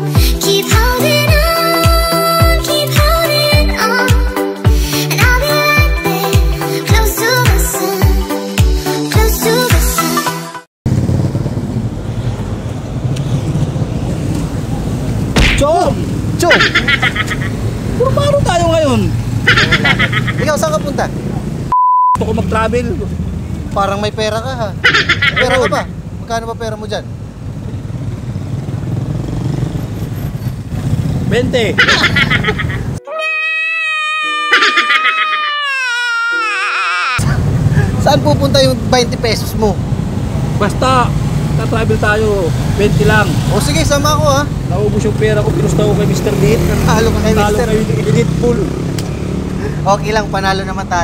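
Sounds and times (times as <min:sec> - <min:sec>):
vehicle engines rumbling: 0:10.9 - 0:33.0, 0:37.2 - 0:51.0
street traffic hum: 0:10.9 - 0:51.0
person speaking: 0:25.2 - 0:25.9
high wavering wail with sobbing: 0:33.0 - 0:37.4.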